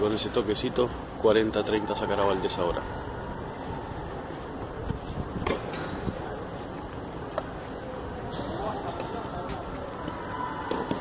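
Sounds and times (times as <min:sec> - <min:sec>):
wind buffeting microphone: 0:02.4 - 0:07.3.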